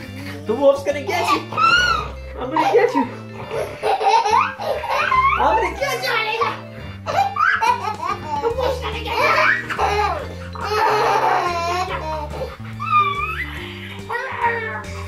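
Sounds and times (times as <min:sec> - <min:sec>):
background music with bass line: 0:00.0 - 0:15.0
girl laughing hysterically: 0:01.2 - 0:14.9.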